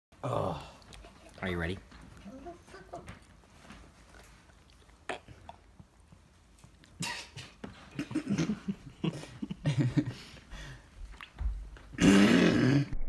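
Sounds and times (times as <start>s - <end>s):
mouth sounds and small clicks: 11.1s - 11.4s
loud noisy biting burst: 12.0s - 13.0s.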